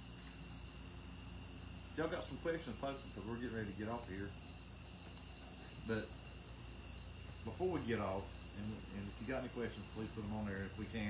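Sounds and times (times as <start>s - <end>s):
high-pitched background whine: 0.0s - 11.0s.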